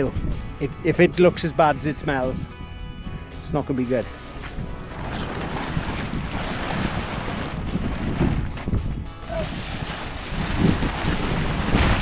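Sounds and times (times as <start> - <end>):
wind buffeting microphone: 0.0 - 3.4, 4.1 - 12.0.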